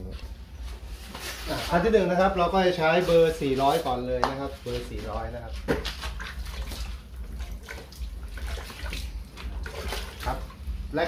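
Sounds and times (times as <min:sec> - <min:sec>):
water sloshing in a plastic bucket: 0:04.6 - 0:10.8.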